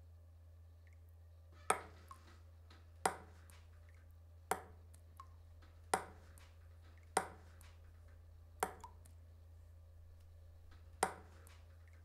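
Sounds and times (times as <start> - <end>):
water dripping into plastic cup: 8.6 - 9.2, 10.7 - 12.0.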